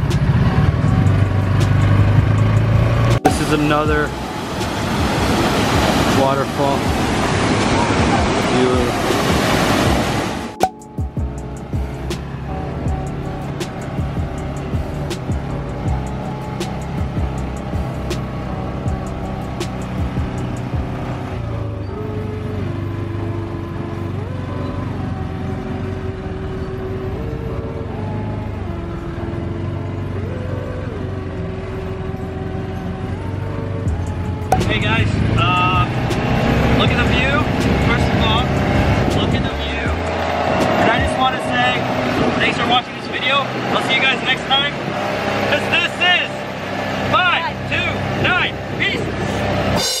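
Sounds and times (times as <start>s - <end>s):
quad bike engine running: 0.0s - 6.1s, 11.2s - 50.0s.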